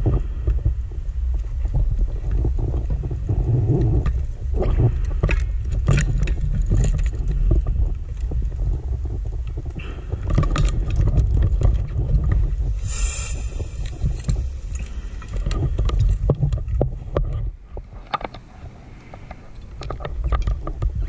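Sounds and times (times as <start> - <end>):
underwater low rumble: 0.0 - 18.0.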